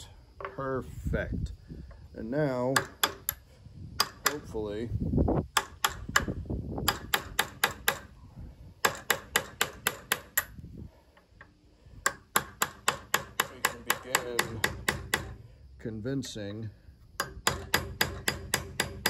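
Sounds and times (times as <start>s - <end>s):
hammer striking steel rod: 12.0s - 15.4s, 17.2s - 19.0s.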